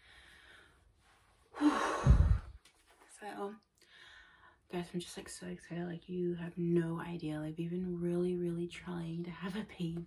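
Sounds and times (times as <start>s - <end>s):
woman sighing heavily: 1.6s - 2.6s.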